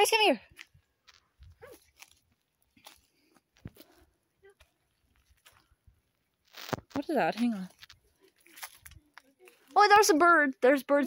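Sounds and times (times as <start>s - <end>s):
footsteps in dry grass: 0.5s - 10.6s.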